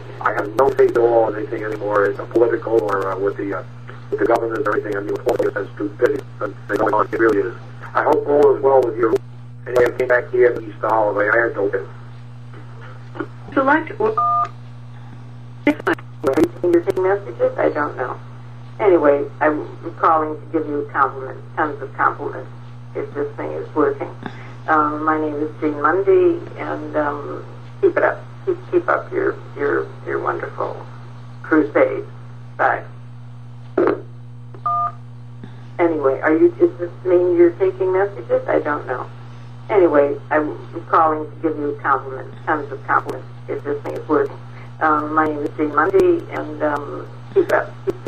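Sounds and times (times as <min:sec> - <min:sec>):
person speaking: 0:00.0 - 0:14.2, 0:15.6 - 0:22.4, 0:35.5 - 0:48.0
steady low hum: 0:00.0 - 0:48.0
clipped voice fragments: 0:00.2 - 0:11.6
telephone keypad tone: 0:34.6 - 0:35.0.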